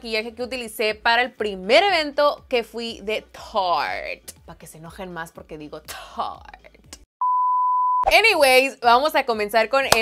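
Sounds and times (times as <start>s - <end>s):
censor beep: 7.2s - 8.1s.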